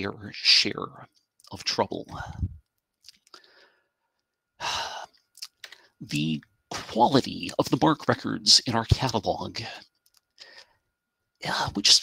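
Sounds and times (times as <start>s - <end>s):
man sighing breath: 3.3s - 3.9s.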